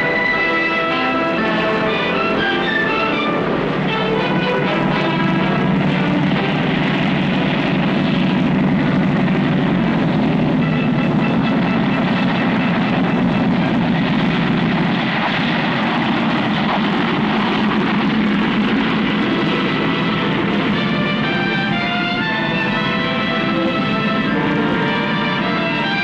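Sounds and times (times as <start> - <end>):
propeller plane piston engines: 0.0 - 26.0.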